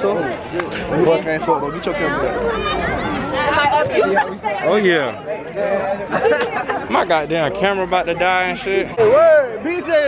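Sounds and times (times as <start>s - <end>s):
young men talking excitedly: 0.0s - 10.0s.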